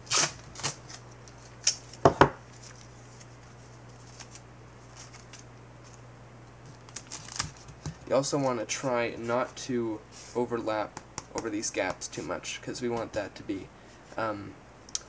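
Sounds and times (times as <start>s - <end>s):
masking tape tearing: 0.0s - 1.0s, 6.9s - 7.6s
faint steady hum: 0.0s - 15.0s.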